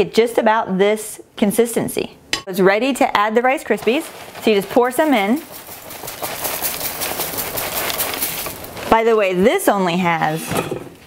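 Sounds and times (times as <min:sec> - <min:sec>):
cereal pattering into metal pan: 0:03.4 - 0:09.7.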